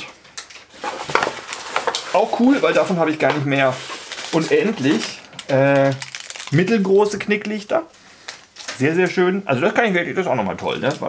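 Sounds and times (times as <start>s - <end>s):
paper and tape tearing and crinkling: 0.4s - 6.8s.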